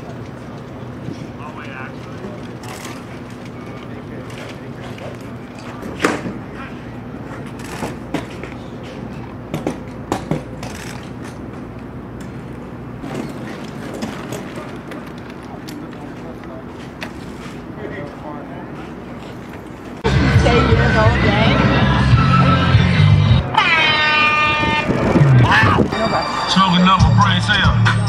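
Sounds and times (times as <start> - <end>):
faint indistinct voices: 0.0 - 9.5, 13.4 - 28.0.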